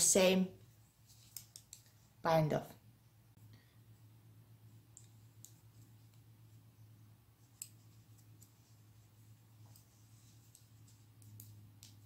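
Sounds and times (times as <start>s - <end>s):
low steady hum: 0.0s - 12.0s
knitting needles clicking: 1.1s - 2.0s, 4.8s - 6.3s, 7.4s - 8.6s, 9.6s - 12.0s.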